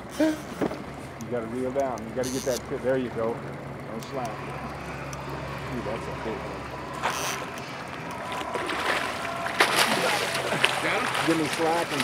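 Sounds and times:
fish splashing in water: 0:07.0 - 0:12.0.

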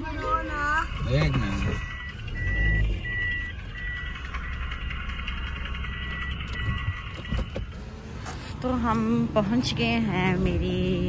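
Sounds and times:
car engine rumble: 0:00.0 - 0:11.0
car warning beeper: 0:00.3 - 0:07.9.

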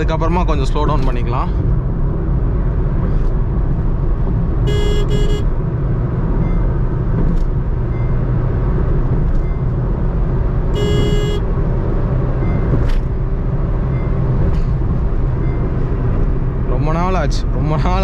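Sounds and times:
car engine and tyres droning: 0:00.0 - 0:18.0
vehicle horn: 0:04.6 - 0:05.5, 0:10.7 - 0:11.5.

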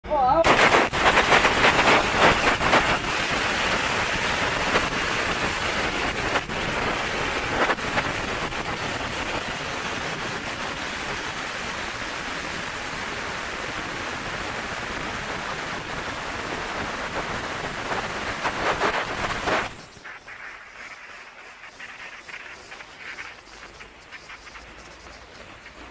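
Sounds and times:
firecrackers crackling: 0:00.3 - 0:25.9.

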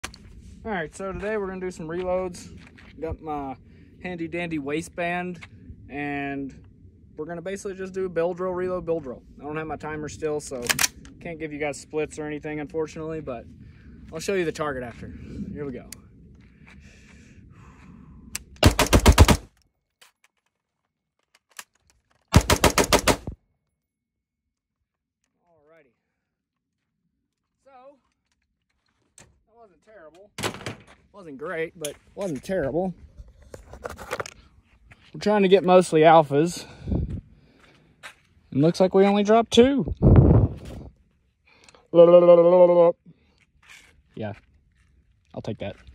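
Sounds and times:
magazine reload clicks: 0:10.6 - 0:11.1
rifle shots in rapid strings: 0:18.6 - 0:19.5, 0:22.4 - 0:23.4.

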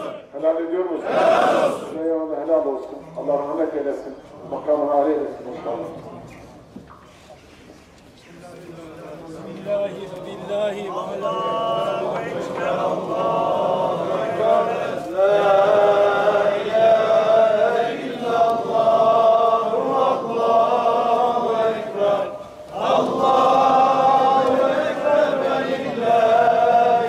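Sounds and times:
men chanting: 0:00.0 - 0:00.2, 0:01.0 - 0:01.9, 0:10.8 - 0:27.0.

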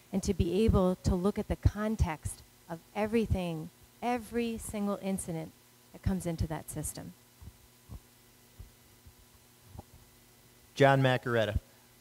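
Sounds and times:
low electrical hum: 0:00.0 - 0:12.0
microphone handling thumps: 0:07.4 - 0:10.0.

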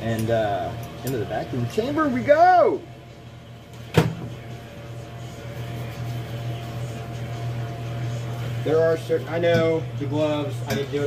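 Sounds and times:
vacuum pump humming: 0:00.0 - 0:11.0.

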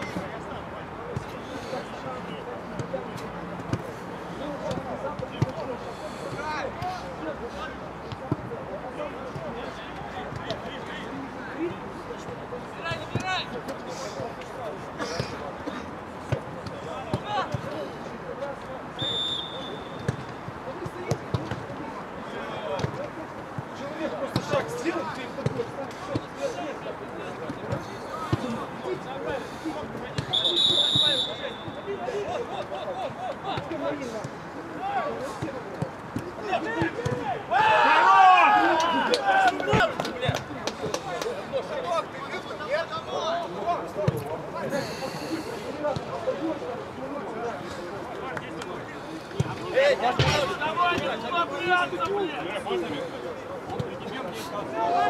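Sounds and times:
players calling out: 0:01.2 - 0:55.0
whistle blasts: 0:19.0 - 0:20.1, 0:30.3 - 0:31.9.

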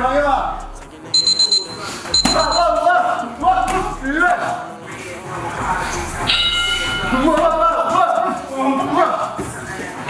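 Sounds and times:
electronic buzzer tone: 0:01.1 - 0:02.8
gym noise: 0:01.3 - 0:02.8.

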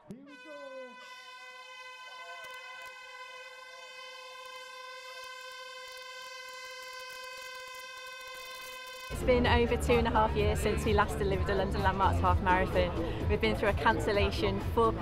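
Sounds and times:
starting horn long note: 0:00.1 - 0:09.6
faint crowd voices: 0:09.1 - 0:15.0.

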